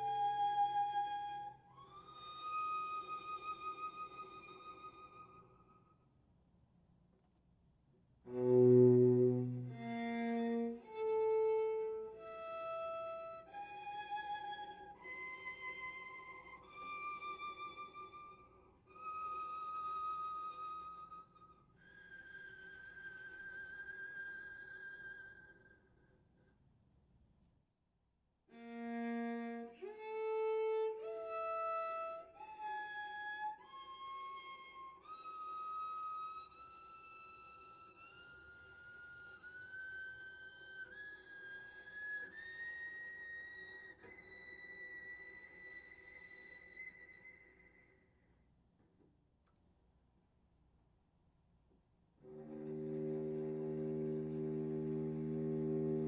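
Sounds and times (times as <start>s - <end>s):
cello playing soft high harmonic: 8.3s - 13.4s, 52.2s - 56.0s.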